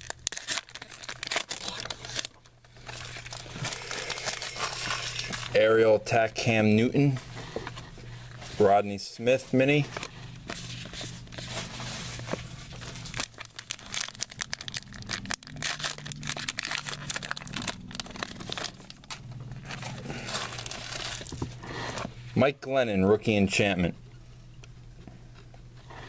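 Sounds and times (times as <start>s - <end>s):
card pack wrapper crinkling: 0.0s - 5.7s, 9.7s - 21.6s
steady low hum: 0.2s - 26.0s.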